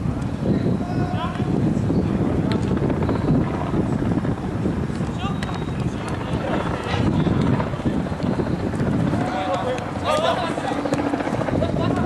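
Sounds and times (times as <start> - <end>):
steady low rumble: 1.4 - 12.0
players shouting: 9.0 - 12.0.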